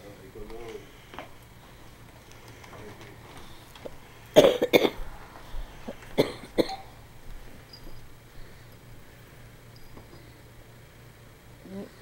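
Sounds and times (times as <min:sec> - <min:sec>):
person coughing: 0:04.4 - 0:05.0, 0:06.2 - 0:06.9.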